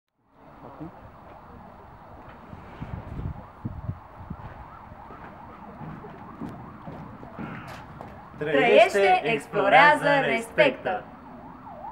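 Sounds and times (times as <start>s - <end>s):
faint siren wailing: 0.4s - 11.9s
soft low thumps: 4.3s - 8.5s.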